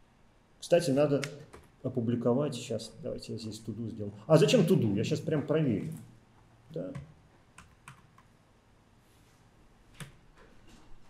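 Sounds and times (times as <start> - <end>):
computer keyboard keystrokes: 6.8 - 8.3.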